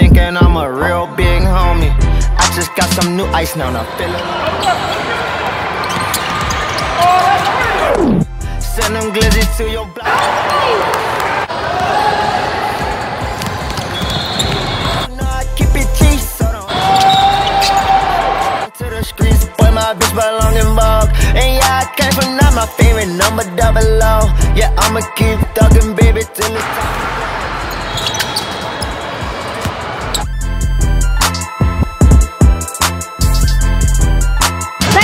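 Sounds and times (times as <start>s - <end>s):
hip hop beat with heavy bass: 0.0s - 3.9s, 7.8s - 10.1s, 15.0s - 16.7s, 18.0s - 27.7s, 30.1s - 35.0s
noise of players and onlookers: 3.1s - 8.3s, 10.0s - 15.2s, 16.6s - 18.7s, 26.4s - 30.3s.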